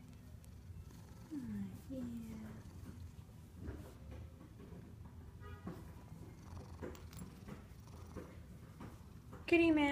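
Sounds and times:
cat purring: 0:00.0 - 0:05.1, 0:06.0 - 0:09.9.

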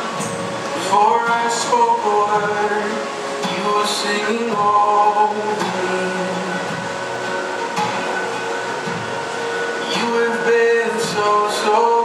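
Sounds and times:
church band worship music: 0:00.0 - 0:12.0.

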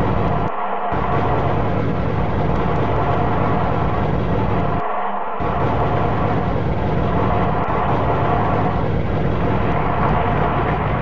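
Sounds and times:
industrial noise music: 0:00.0 - 0:11.0.

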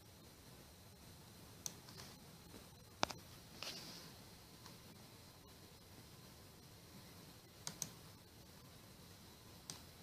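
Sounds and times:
computer mouse button clicks: 0:07.6 - 0:08.0.

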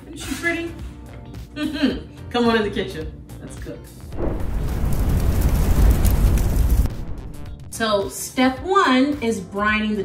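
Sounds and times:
deep rumbling whoosh: 0:04.1 - 0:07.8.

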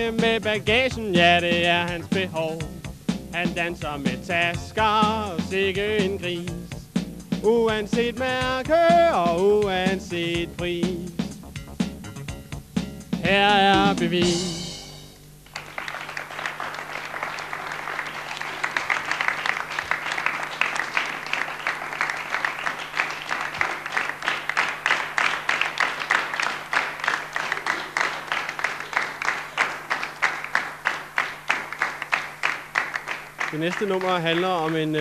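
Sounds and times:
rhythmic clapping in unison: 0:00.0 - 0:35.0
audience applauding: 0:15.4 - 0:35.0.

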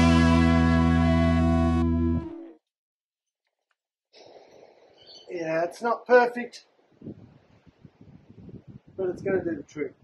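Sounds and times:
wind buffeting microphone: 0:06.9 - 0:10.0.

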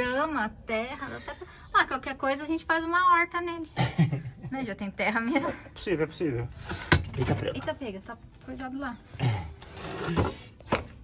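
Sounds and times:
plastic scraping rub: 0:09.6 - 0:10.6.

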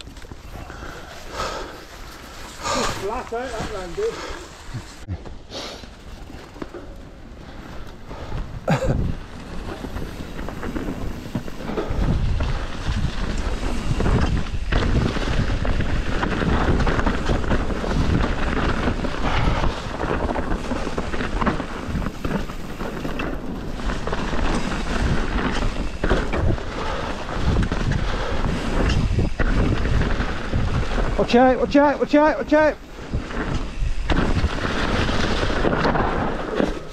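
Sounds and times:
tyres rumbling on dirt: 0:06.0 - 0:36.9
wind on microphone: 0:08.1 - 0:32.0
bike knocks and rattles: 0:08.2 - 0:31.5, 0:33.0 - 0:36.9.

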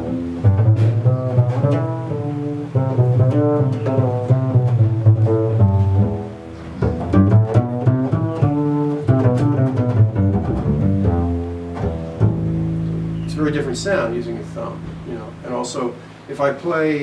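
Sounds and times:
double bass plucked melody: 0:00.0 - 0:17.0.

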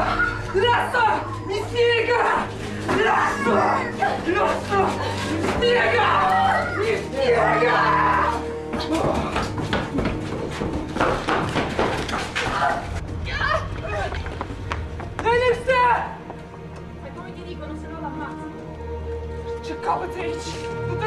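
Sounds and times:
loud cry: 0:00.0 - 0:08.4
people shouting: 0:00.0 - 0:09.4, 0:12.4 - 0:14.1
background music with low tones: 0:00.0 - 0:21.0.

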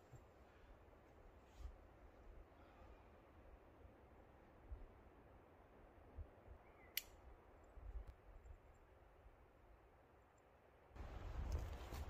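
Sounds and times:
sharp click: 0:06.9 - 0:07.2.

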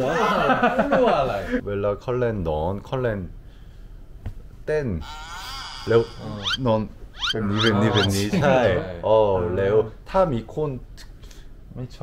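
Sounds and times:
young men talking: 0:00.0 - 0:03.3, 0:05.9 - 0:10.9
drawn-out wavering voice: 0:05.0 - 0:06.6, 0:07.2 - 0:09.0.

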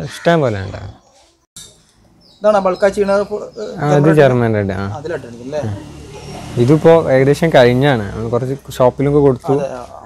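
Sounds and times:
man speaking: 0:00.0 - 0:01.0, 0:02.4 - 0:05.9, 0:06.6 - 0:10.0.

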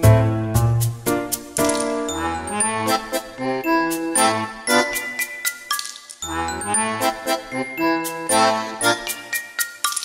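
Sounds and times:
bright tune with bell-like notes: 0:02.0 - 0:10.0.

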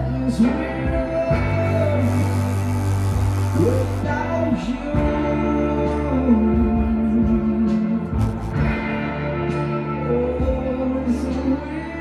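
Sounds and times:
person singing: 0:00.0 - 0:08.7
live band music: 0:01.0 - 0:11.2.

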